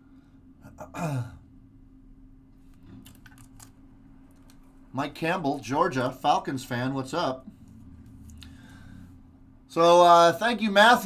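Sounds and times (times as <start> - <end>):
faint steady hum: 0.0 - 11.0
man sighing: 0.6 - 1.5.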